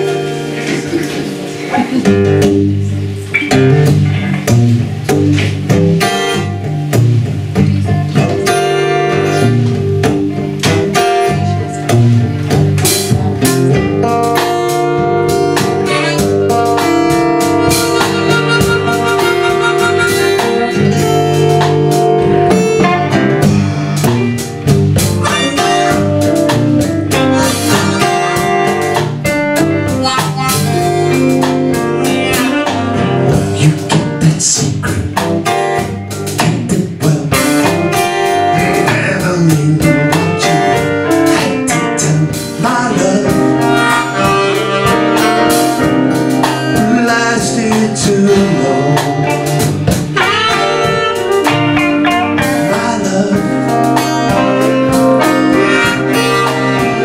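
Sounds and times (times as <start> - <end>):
blues band playing: 0.0 - 57.0
saxophone: 15.6 - 23.2, 25.1 - 33.6, 43.3 - 46.4, 49.4 - 52.8, 53.6 - 57.0
harmonica: 17.4 - 21.1, 43.6 - 45.5.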